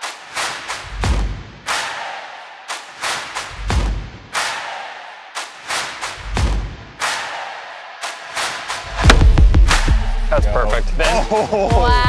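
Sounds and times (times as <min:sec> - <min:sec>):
low thuds: 0:09.0 - 0:09.9.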